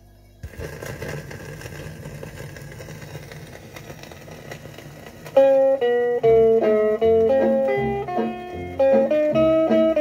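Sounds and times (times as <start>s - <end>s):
record surface hiss: 0.0s - 10.0s
record crackles and clicks: 0.4s - 10.0s.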